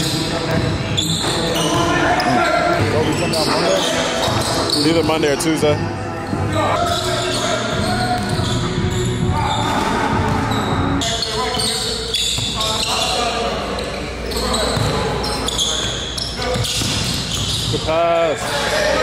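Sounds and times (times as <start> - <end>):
players' voices in a gym: 0.0 - 19.0.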